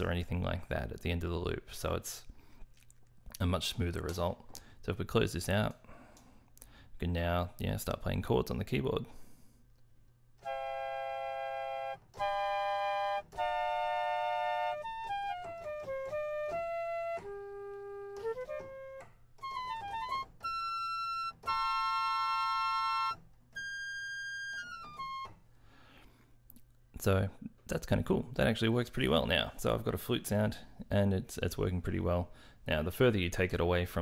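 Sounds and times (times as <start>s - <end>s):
sampled flute notes and chords: 10.4s - 25.4s.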